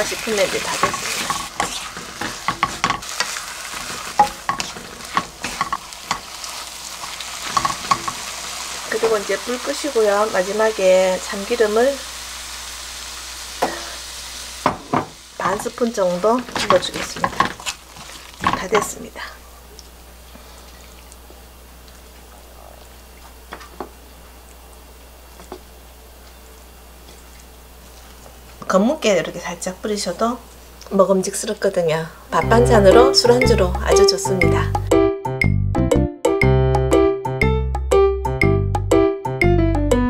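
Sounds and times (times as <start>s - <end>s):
food sizzling in a wok: 0.0s - 19.4s
low background hum: 0.0s - 34.9s
spatula scraping against pan: 0.7s - 8.3s, 16.3s - 19.0s
utensils and dishes knocking: 2.2s - 3.1s, 4.2s - 6.3s, 7.5s - 8.2s, 16.5s - 17.6s.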